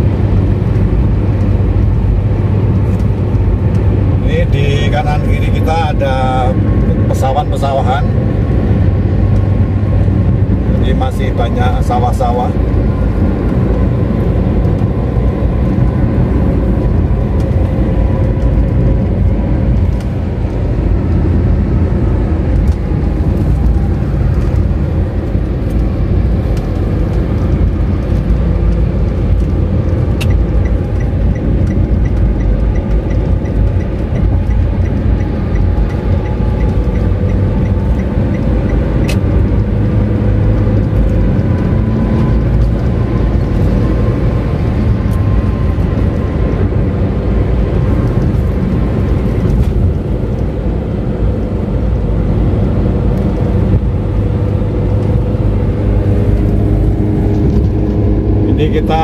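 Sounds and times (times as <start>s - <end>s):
tyre rumble inside car cabin: 7.9s - 59.0s.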